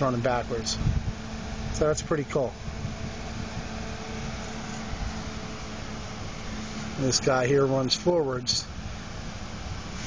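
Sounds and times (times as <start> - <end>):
constant rushing noise: 0.0 - 10.0
mechanical hum: 0.0 - 10.0.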